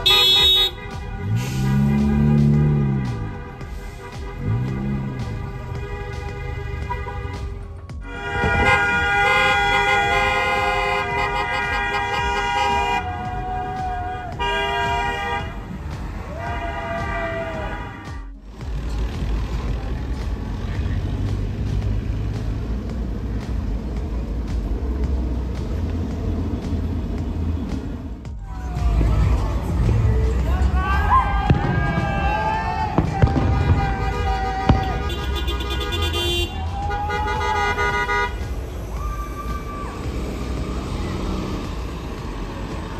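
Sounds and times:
car horns honking: 0:00.0 - 0:18.4, 0:19.7 - 0:42.9
car engines rumbling in traffic: 0:00.0 - 0:42.9
people whooping and shouting: 0:12.6 - 0:15.0, 0:16.1 - 0:18.2, 0:28.4 - 0:35.1, 0:36.0 - 0:41.6.

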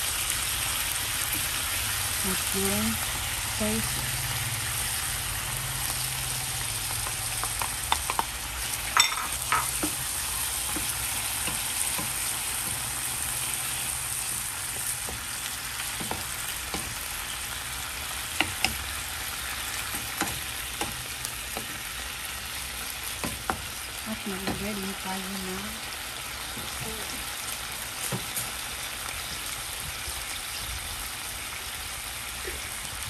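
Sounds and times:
chicken sizzling in oil: 0:00.0 - 0:33.0.

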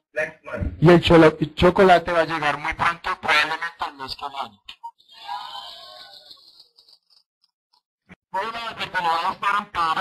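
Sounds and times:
muffled voice over video call: 0:00.0 - 0:06.2, 0:08.3 - 0:10.0
man speaking: 0:00.2 - 0:04.6.

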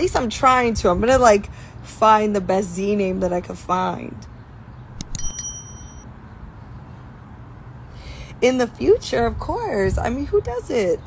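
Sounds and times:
bell-like chime dings: 0:05.0 - 0:06.1.

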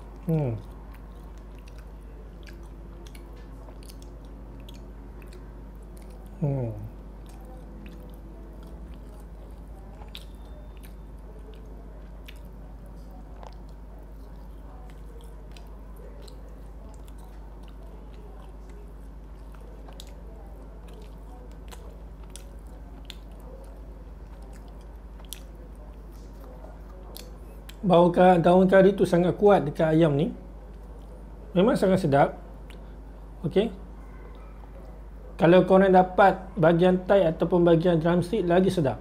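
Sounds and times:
person chewing crunchy food: 0:00.0 - 0:27.9
steady low hum: 0:00.0 - 0:39.0.

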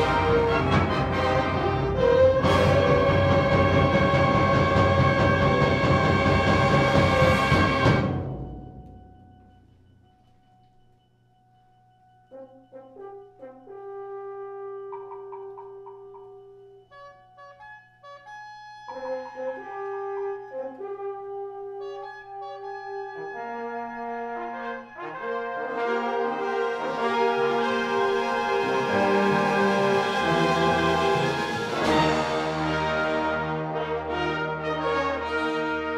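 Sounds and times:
concert band playing: 0:00.0 - 0:08.6, 0:25.8 - 0:35.9
brass phrases: 0:00.0 - 0:09.0, 0:12.3 - 0:15.2, 0:16.7 - 0:35.9.

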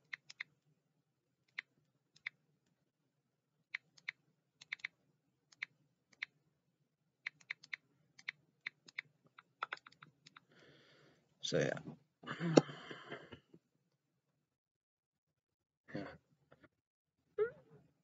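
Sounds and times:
computer keyboard typing: 0:00.0 - 0:00.5, 0:03.8 - 0:04.9, 0:07.3 - 0:10.4.

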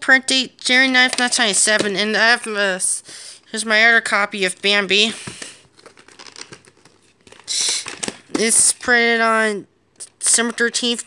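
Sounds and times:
plastic case crinkling: 0:04.6 - 0:09.0.

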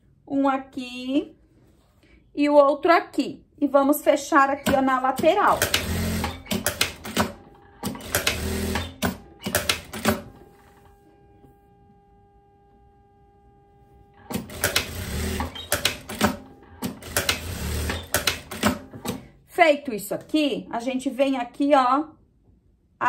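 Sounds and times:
sewing machine stitching: 0:04.6 - 0:10.3, 0:14.2 - 0:19.2.

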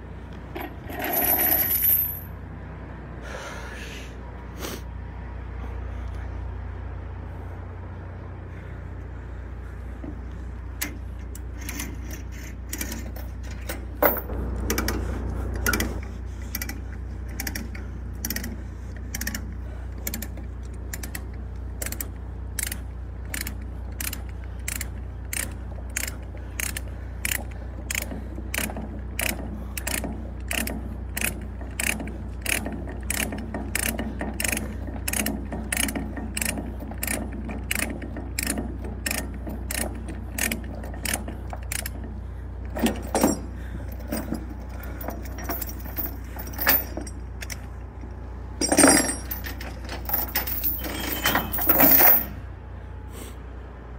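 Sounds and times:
low rumble: 0:14.0 - 0:17.3
ratchet pawl clicking: 0:20.9 - 0:42.0.

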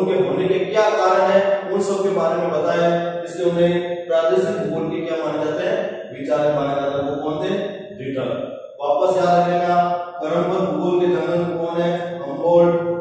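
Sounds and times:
man lecturing in chant-like voice: 0:00.0 - 0:13.0.

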